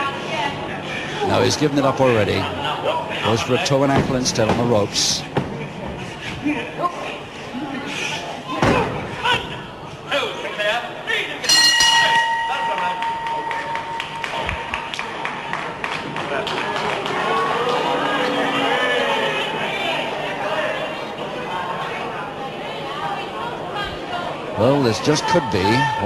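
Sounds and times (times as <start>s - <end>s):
bell ringing: 11.5s - 14.9s
crowd voices calling out: 16.8s - 26.0s.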